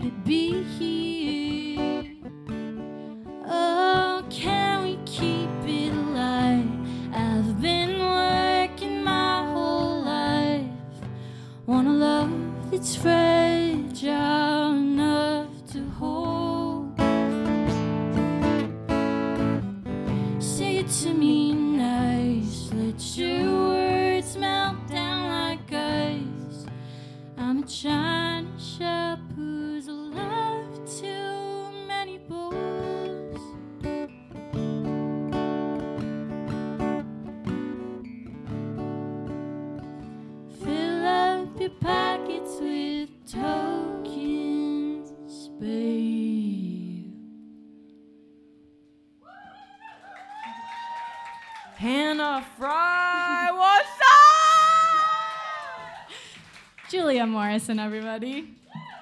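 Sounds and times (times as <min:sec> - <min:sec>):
woman singing: 0:00.0 - 0:02.4, 0:03.4 - 0:17.2, 0:20.3 - 0:26.8, 0:27.4 - 0:33.6, 0:40.5 - 0:47.4, 0:51.8 - 0:56.1
audience cheering and whooping: 0:49.2 - 0:51.8, 0:53.1 - 0:56.5, 0:58.6 - 0:59.0.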